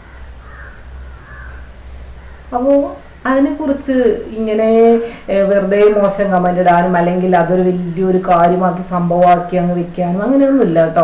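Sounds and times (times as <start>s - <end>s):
bird calling: 0.0s - 3.2s
steady low hum: 0.0s - 11.0s.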